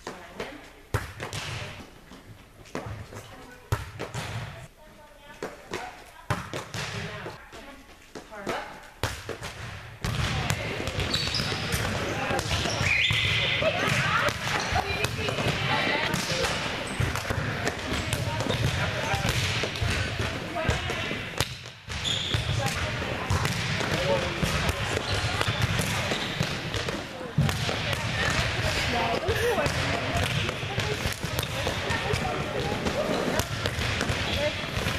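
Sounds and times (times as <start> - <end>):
volleyballs hit and bouncing: 0.0 - 4.6, 5.2 - 34.9
indistinct chatter: 10.4 - 21.4, 22.3 - 34.9.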